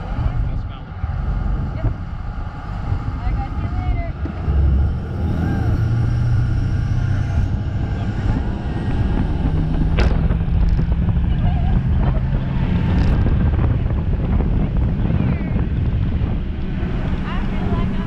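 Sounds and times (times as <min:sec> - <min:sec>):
boat engine humming: 0:00.0 - 0:18.0
wind: 0:00.0 - 0:18.0.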